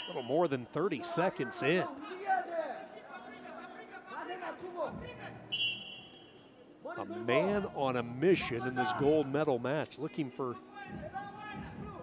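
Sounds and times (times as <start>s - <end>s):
referee's whistle blast: 0.0s - 0.6s, 5.5s - 6.3s.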